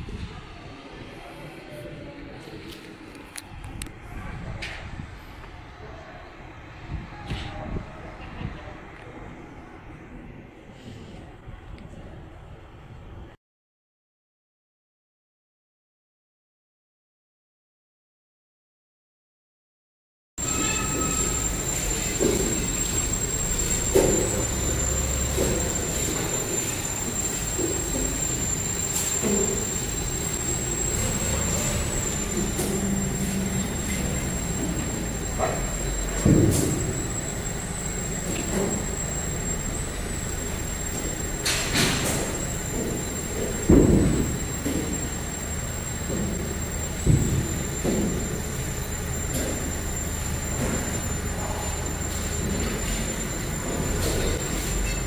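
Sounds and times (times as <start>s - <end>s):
high-pitched whine: 20.4s - 55.0s
industrial machinery noise: 20.4s - 55.0s.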